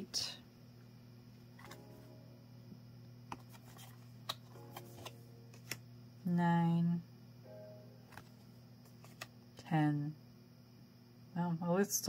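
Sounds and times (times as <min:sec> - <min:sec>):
low hum: 0:00.0 - 0:11.5
cards clicking and tapping: 0:03.3 - 0:05.8, 0:08.1 - 0:09.3.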